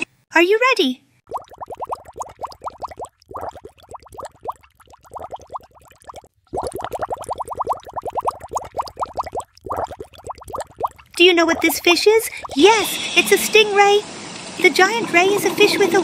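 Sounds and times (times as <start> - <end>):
cartoon underwater bubbling: 1.3 - 12.8.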